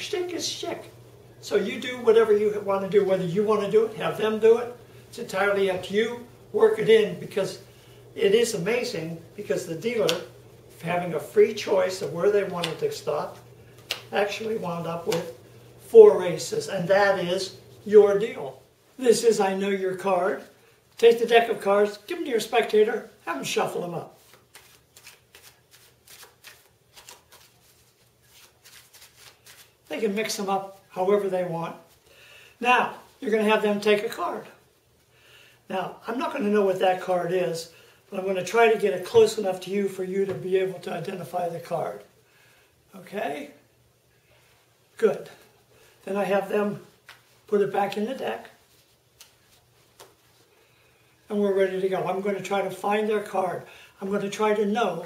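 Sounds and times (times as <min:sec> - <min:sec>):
playing cards being shuffled: 0:09.9 - 0:10.5, 0:11.6 - 0:15.4, 0:24.2 - 0:30.0, 0:47.0 - 0:50.4
playing cards clicking: 0:12.5 - 0:12.9, 0:13.8 - 0:14.1, 0:24.3 - 0:27.5.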